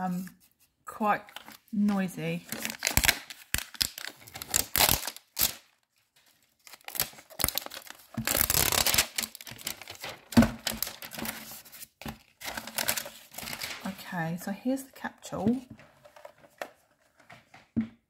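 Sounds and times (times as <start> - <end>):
plastic wrapping tearing and crinkling: 2.4 - 14.0.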